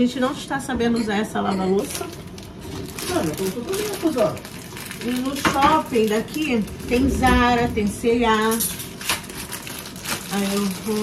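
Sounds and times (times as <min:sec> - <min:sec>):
people talking: 0:00.0 - 0:02.2, 0:03.0 - 0:04.4, 0:05.0 - 0:08.8, 0:10.3 - 0:11.0.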